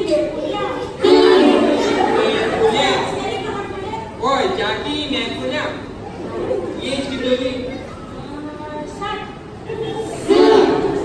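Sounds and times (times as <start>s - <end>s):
voices talking in echoing hall: 0.0s - 11.0s.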